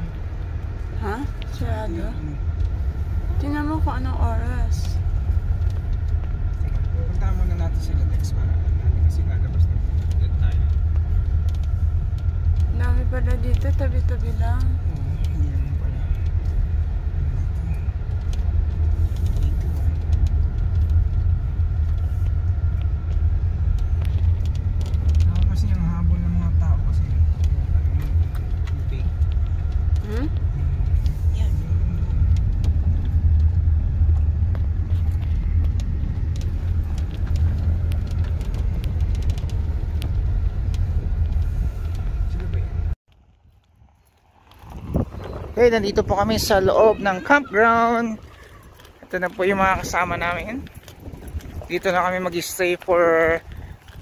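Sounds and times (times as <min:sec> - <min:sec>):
car engine rumble from cabin: 0:00.0 - 0:54.0
tyres on gravel road: 0:00.0 - 0:54.0.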